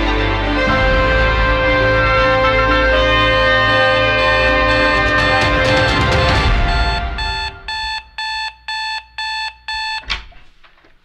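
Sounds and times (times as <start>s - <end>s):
phone alarm beeping: 4.2s - 10.1s.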